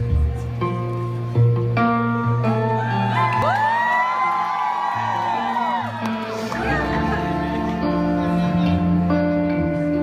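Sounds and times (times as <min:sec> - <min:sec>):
audience whooping: 0:02.5 - 0:08.0.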